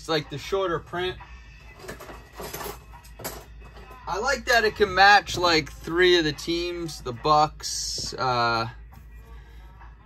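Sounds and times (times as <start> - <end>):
plastic stands and boxes clattering: 1.7 - 4.0.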